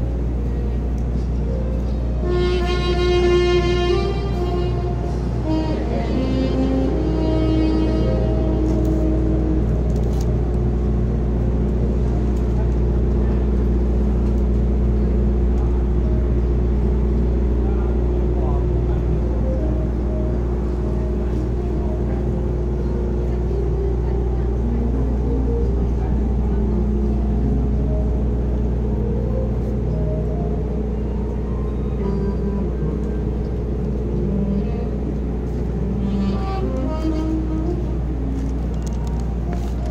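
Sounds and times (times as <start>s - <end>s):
slow background music: 0.0s - 11.1s, 18.8s - 39.9s
steady low rumble: 0.0s - 39.9s
murmur of voices: 12.4s - 30.1s.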